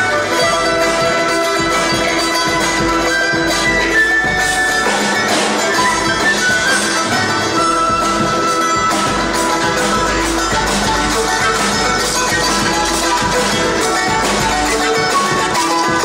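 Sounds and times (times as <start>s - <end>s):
string and percussion accompaniment: 0.0s - 16.0s.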